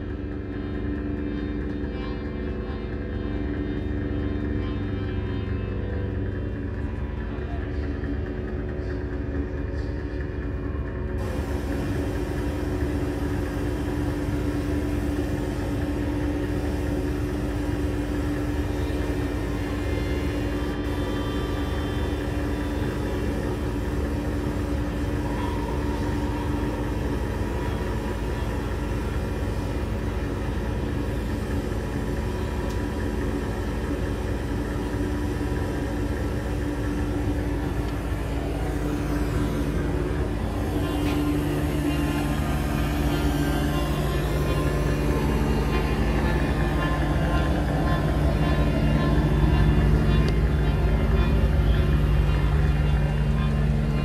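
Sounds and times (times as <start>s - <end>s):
steady held tone: 11.2s - 54.0s.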